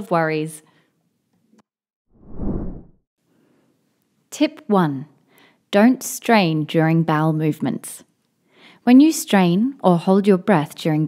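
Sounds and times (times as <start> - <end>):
whoosh sound effect: 2.2 - 3.0.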